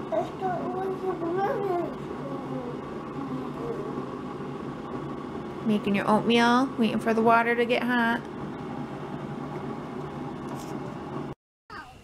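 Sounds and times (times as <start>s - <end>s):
coffee maker humming: 0.0s - 11.4s.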